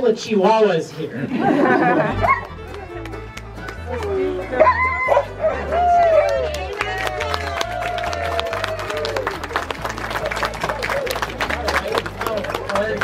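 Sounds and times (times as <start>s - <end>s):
dogs howling: 4.6s - 6.4s.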